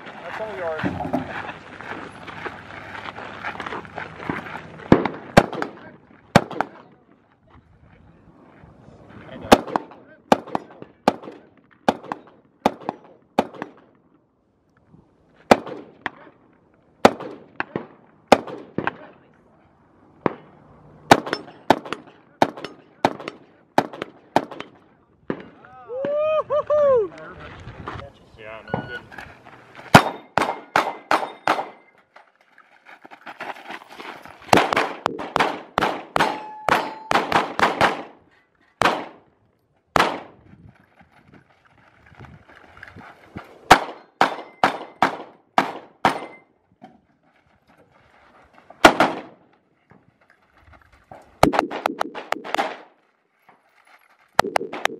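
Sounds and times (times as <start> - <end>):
rifle shots: 4.9 - 6.9, 9.5 - 13.8, 15.5 - 16.3, 17.0 - 19.1, 21.1 - 25.6, 29.9 - 31.9, 34.5 - 38.2, 38.8 - 39.2, 40.0 - 40.4, 43.7 - 46.4, 48.8 - 49.4, 51.4 - 52.9.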